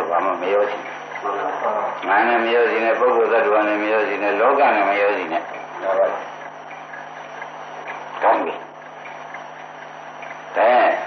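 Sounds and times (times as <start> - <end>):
man talking: 0.0 - 6.2, 10.5 - 11.0
recording hiss and low hum: 0.0 - 11.0.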